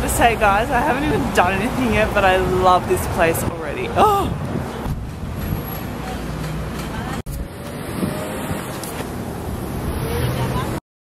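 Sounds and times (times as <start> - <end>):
city street traffic: 0.0 - 10.8.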